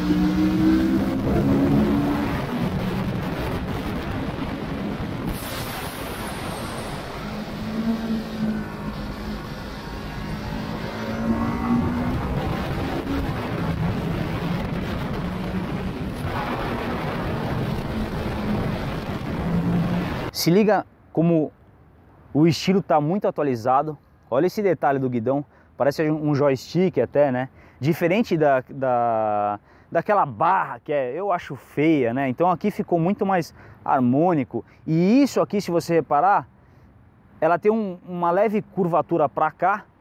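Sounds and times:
wind rush on microphone: 0:00.0 - 0:20.3.

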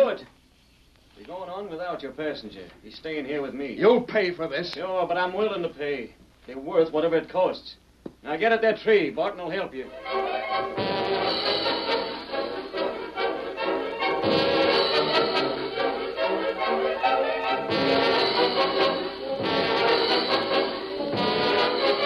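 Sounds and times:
orchestral brass music: 0:09.9 - 0:22.0.

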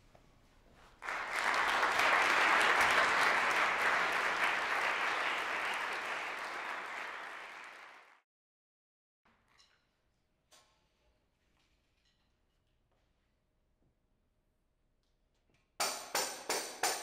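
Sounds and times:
audience applauding: 0:01.0 - 0:08.2.

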